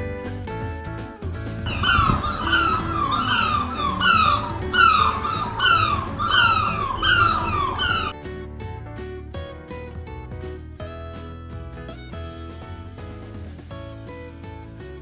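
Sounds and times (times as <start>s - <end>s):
guitar music: 0.8s - 15.0s
high downward-sliding cries: 1.7s - 8.1s.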